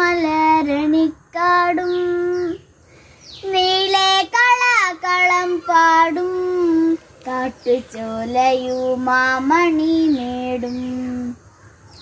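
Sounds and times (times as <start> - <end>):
child singing unaccompanied: 0.0 - 11.5.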